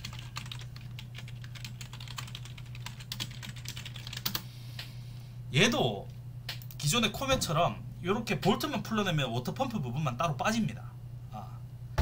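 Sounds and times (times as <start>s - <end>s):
typing on computer keyboard: 0.0s - 4.4s
steady low hum: 0.0s - 12.0s.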